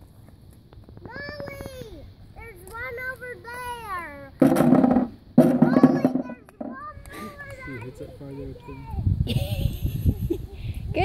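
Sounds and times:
loud bursts of noise: 4.4 - 6.7
young child babbling: 5.7 - 9.0.

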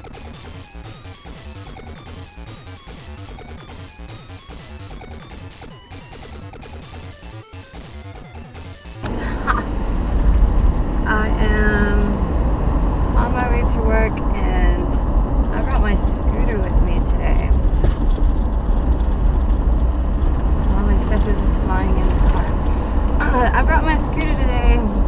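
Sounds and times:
car engine rumble: 9.0 - 25.0
road noise: 9.0 - 25.0
woman talking: 11.1 - 12.2, 13.2 - 17.6, 20.7 - 25.0.

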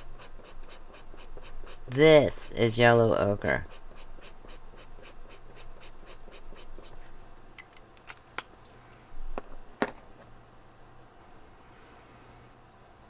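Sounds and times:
marker scrubbing on paper: 0.0 - 2.0, 2.8 - 7.0.

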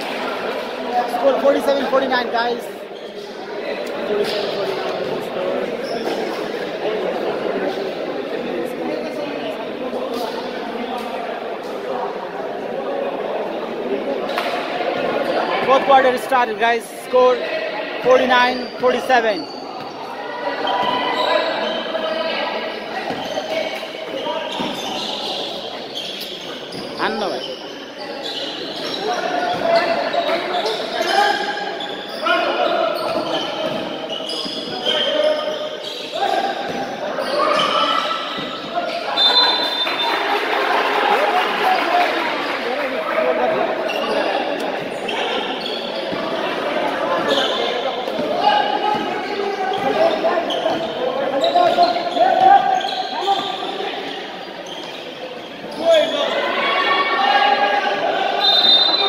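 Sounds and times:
people shouting and talking: 0.0 - 59.0.

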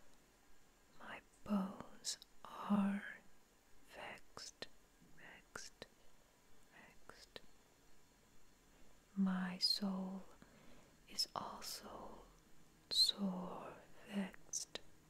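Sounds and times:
person whispering: 1.0 - 3.2, 3.9 - 5.9, 6.7 - 7.4, 9.1 - 10.4, 11.1 - 12.3, 12.9 - 14.9.

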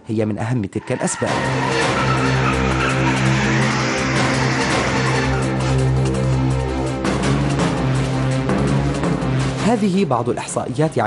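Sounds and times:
background music: 0.0 - 11.0
car tyres squealing in a skid: 0.8 - 5.8.

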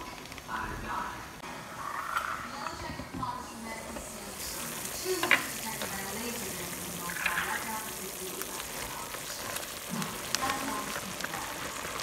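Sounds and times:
broth simmering in a pan: 0.0 - 12.0
bubbles popping: 4.6 - 12.0.

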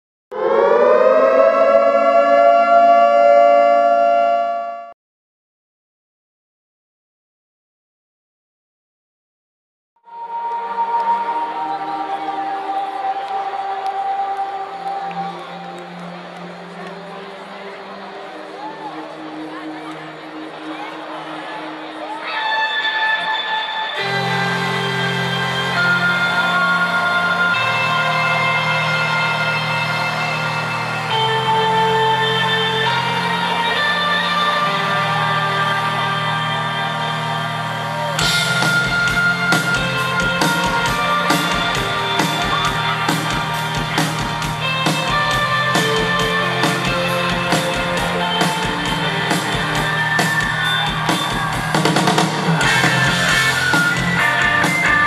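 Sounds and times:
siren wail: 0.3 - 5.0, 22.3 - 55.0
rock band playing live: 22.4 - 55.0.

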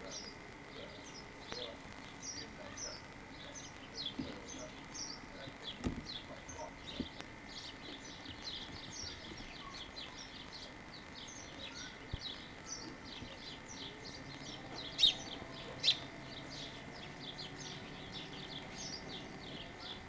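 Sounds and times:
small songbirds chirping: 0.0 - 20.0.

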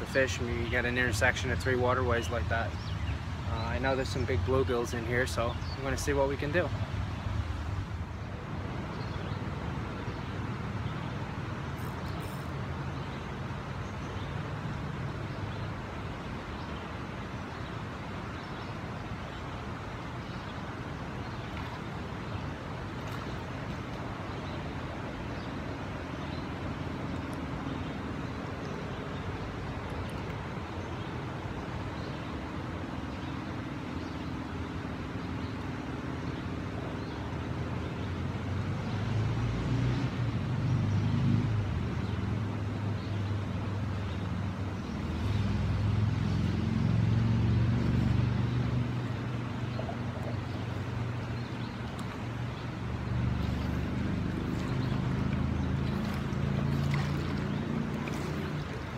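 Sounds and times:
flowing river water: 0.0 - 58.9
low engine hum: 0.0 - 58.9.

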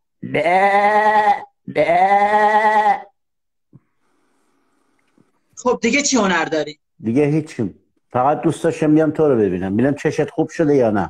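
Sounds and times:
man imitating goat bleats: 0.2 - 3.1.

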